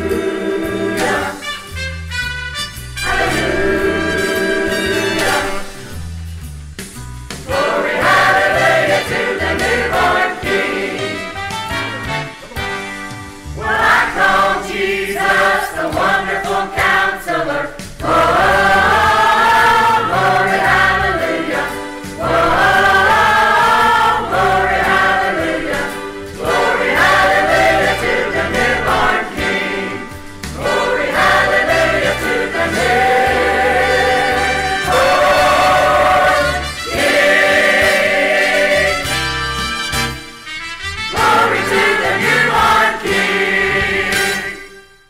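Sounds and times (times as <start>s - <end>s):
choir singing gospel song: 0.0s - 1.8s, 2.5s - 12.2s, 13.3s - 40.2s, 41.1s - 44.9s
bass line accompaniment: 0.0s - 44.6s.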